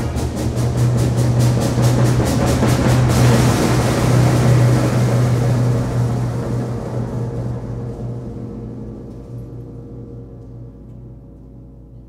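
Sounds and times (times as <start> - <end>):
symphonic band playing: 0.0 - 7.5
timpani roll: 0.0 - 11.9.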